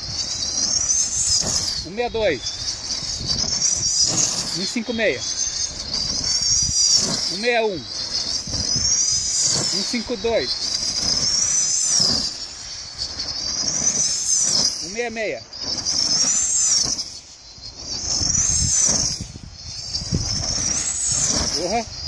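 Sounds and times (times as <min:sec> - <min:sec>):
glider whistling past: 0:00.0 - 0:22.0.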